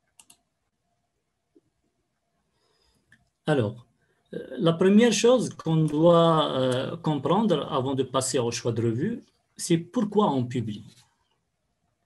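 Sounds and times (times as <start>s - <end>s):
sharp clicks: 0.0s - 0.4s.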